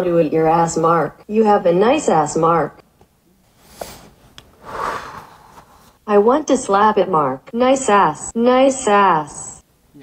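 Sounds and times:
person breathing deeply: 3.6 - 6.0.

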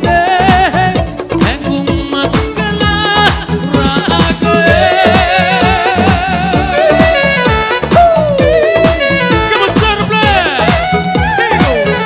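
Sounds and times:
live band dance music: 0.0 - 12.0.

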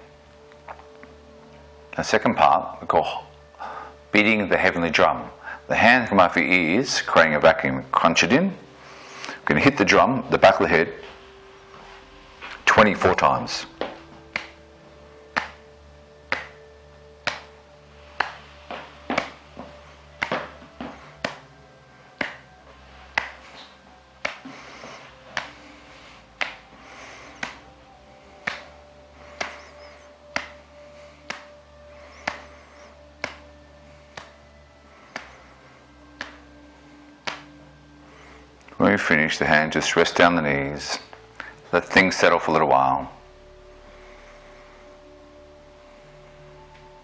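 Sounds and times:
fingers tapping head: 12.5 - 27.7, 28.3 - 34.4, 35.0 - 36.6, 37.2 - 37.7.

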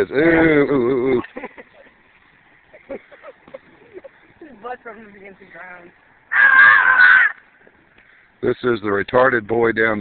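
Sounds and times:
person shrieking: 6.3 - 7.4.

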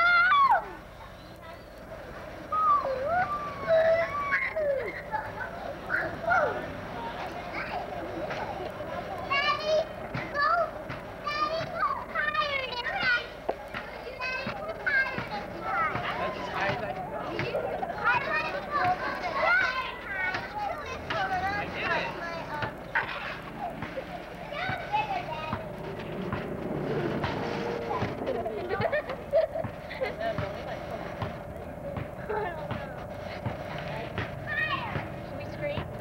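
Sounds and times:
children shouting and squealing: 0.0 - 30.2, 34.4 - 35.2.

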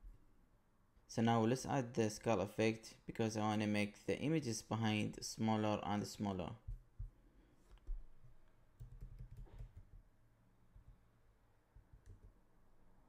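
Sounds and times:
computer keyboard typing: 8.8 - 10.0.

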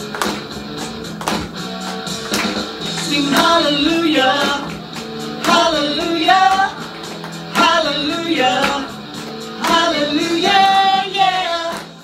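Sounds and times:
instrumental accompaniment with beat: 0.0 - 12.0
women singing worship song: 3.1 - 4.7, 5.4 - 6.8, 7.6 - 9.0, 9.6 - 12.0.

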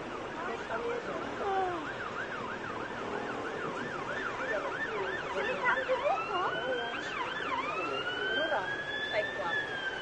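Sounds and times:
emergency siren yelping: 0.0 - 10.0.

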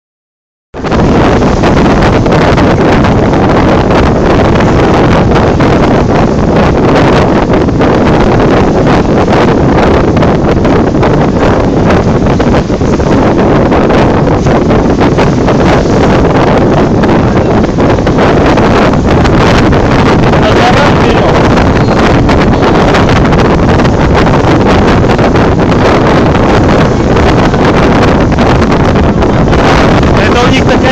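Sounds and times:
wind buffeting microphone: 0.8 - 30.9.

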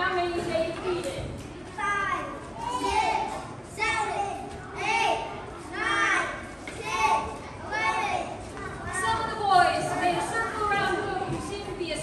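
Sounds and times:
children shouting: 1.8 - 10.4.

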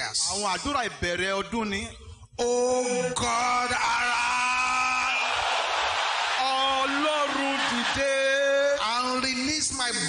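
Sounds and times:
congregation shouting prayers: 3.3 - 9.0.

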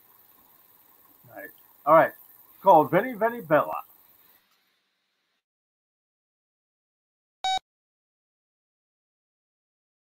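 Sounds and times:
short electronic beep: 7.4 - 7.6.

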